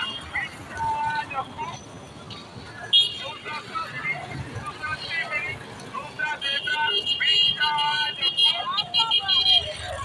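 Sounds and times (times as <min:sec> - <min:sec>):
motorbike traffic: 0:00.0 - 0:10.0.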